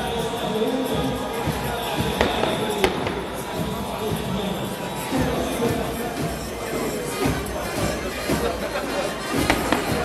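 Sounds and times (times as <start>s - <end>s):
band music: 0.0s - 10.0s
crowd noise: 0.0s - 10.0s.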